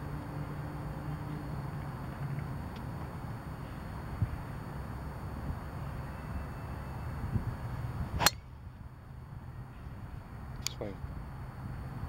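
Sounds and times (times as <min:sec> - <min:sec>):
golf club striking ball: 0:08.2 - 0:08.5.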